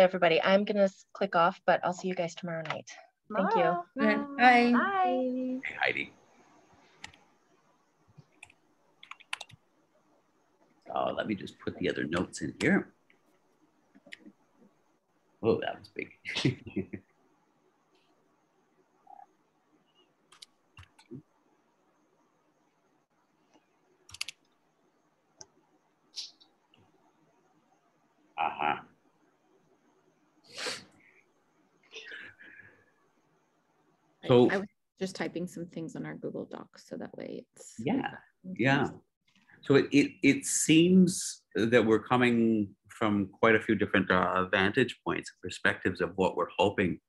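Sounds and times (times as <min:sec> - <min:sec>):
computer keys typing: 0:08.3 - 0:09.6, 0:24.1 - 0:24.5.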